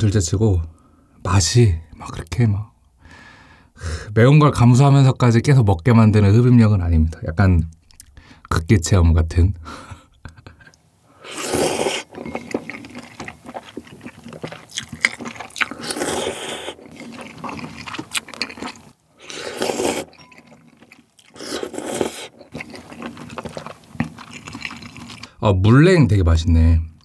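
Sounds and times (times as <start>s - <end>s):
person slurping noodles: 11.2s - 20.1s, 21.3s - 25.3s
wet chewing: 11.2s - 25.4s.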